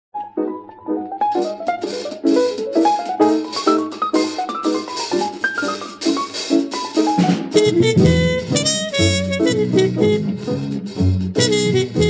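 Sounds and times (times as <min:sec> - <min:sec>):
struck piano chords: 0:00.2 - 0:12.0
drum kit with cymbals: 0:01.4 - 0:12.0.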